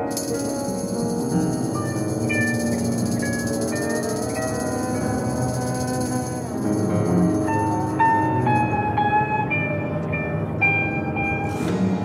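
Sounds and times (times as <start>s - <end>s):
low sustained background: 0.0s - 12.0s.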